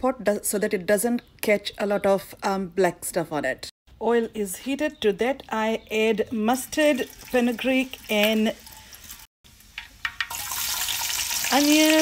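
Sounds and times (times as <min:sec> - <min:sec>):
oil crackling: 0:06.5 - 0:12.0
food sizzling in oil: 0:06.6 - 0:12.0.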